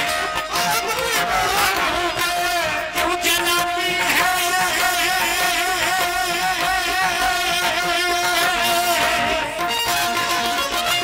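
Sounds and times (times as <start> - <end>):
man singing ornamented vocals: 0.0 - 10.4
harmonium held notes: 0.0 - 11.0.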